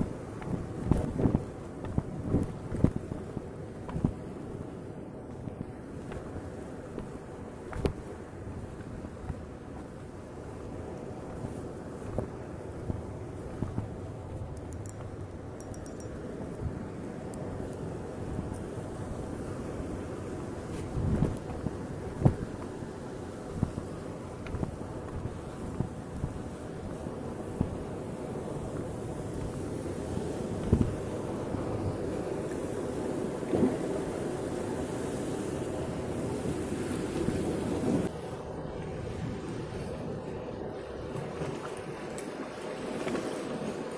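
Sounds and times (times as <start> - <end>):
wind rumbling on microphone: 0.0 - 43.9.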